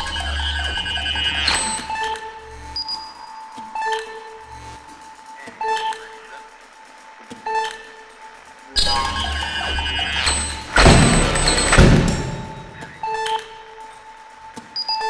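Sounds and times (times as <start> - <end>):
sharp percussive attacks: 10.3 - 13.0.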